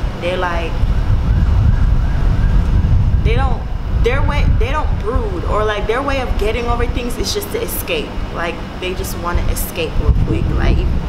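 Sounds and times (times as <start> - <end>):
wind buffeting microphone: 0.0 - 11.0
distant siren wailing: 0.1 - 10.1.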